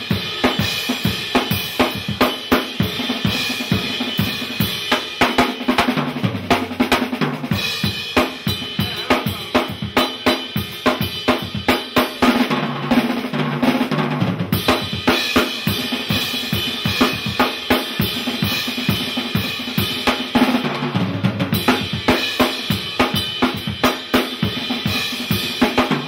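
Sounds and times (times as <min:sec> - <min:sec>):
drum kit played fast: 0:00.0 - 0:26.0.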